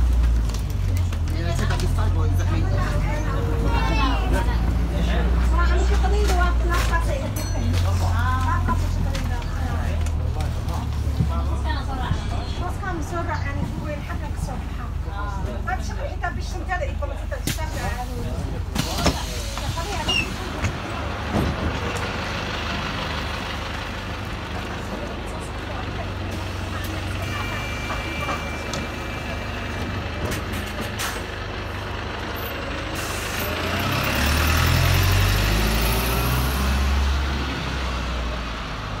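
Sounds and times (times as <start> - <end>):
bus engine running: 0.0 - 39.0.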